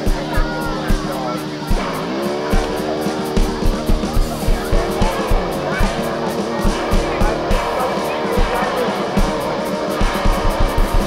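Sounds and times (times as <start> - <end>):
electronic drum beat: 0.0 - 11.0.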